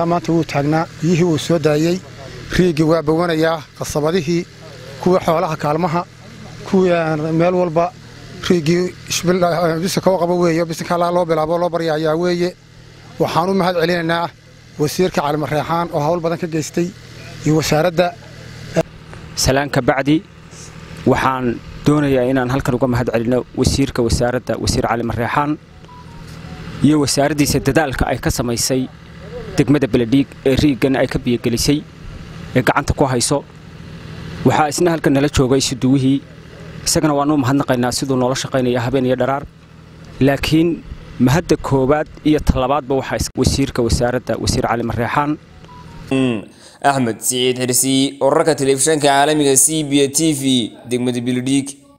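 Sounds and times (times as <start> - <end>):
man speaking into a microphone: 0.0 - 12.6, 21.0 - 25.6, 26.7 - 31.9, 34.4 - 36.2, 40.2 - 45.4, 46.1 - 51.9.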